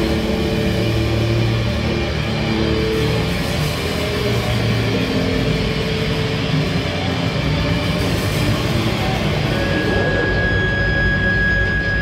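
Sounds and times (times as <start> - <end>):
rock band playing: 0.0 - 11.9
steady high tone: 0.0 - 12.0.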